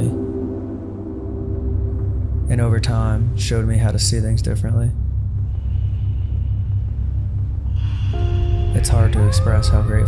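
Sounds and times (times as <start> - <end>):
deep low rumble: 0.0 - 10.0.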